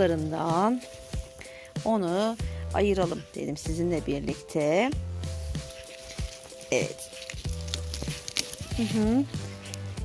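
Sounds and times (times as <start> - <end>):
dry vine crackling: 0.0 - 10.0
soft music: 0.0 - 10.0.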